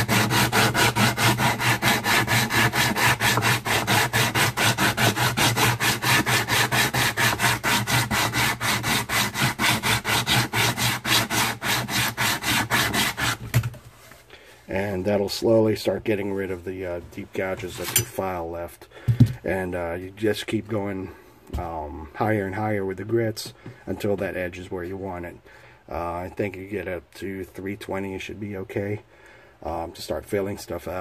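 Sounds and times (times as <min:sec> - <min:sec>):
sandpaper rubbing on wood: 0:00.0 - 0:13.4.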